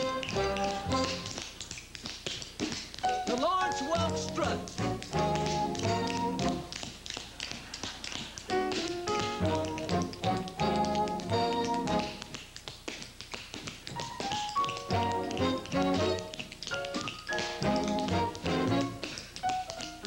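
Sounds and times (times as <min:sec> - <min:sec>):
dance band playing: 0:00.0 - 0:01.4, 0:03.0 - 0:06.8, 0:17.3 - 0:19.1
tap shoes clicking on stage floor: 0:00.0 - 0:20.0.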